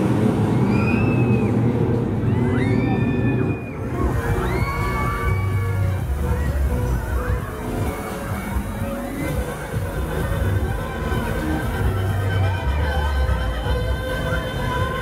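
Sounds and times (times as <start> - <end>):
riders screaming: 0.3 - 6.1
fairground music with heavy bass: 3.2 - 15.0.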